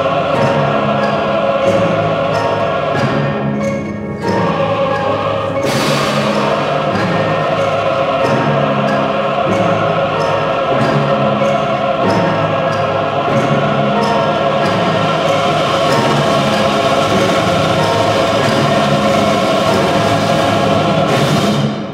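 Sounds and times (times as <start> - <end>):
choir and orchestra chord: 0.0 - 21.9
percussion strokes: 0.0 - 21.9.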